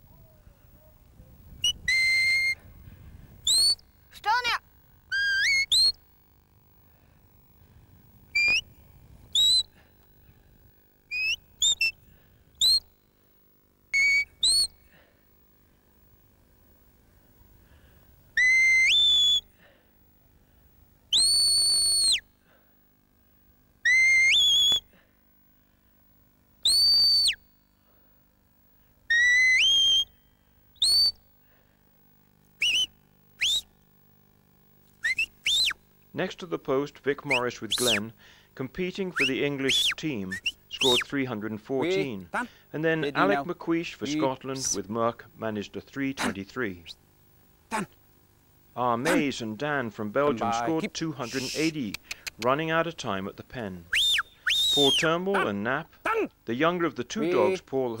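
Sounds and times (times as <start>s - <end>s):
shrill whistle commands: 1.6s - 2.6s, 3.4s - 6.0s, 8.4s - 8.7s, 9.3s - 9.7s, 11.1s - 12.0s, 12.6s - 12.9s, 14.0s - 14.8s, 18.4s - 19.5s, 21.1s - 22.3s, 23.8s - 24.9s, 26.6s - 27.4s, 29.1s - 31.2s, 32.6s - 33.7s, 35.0s - 35.8s, 37.3s - 38.1s, 39.1s - 41.2s, 53.9s - 55.4s.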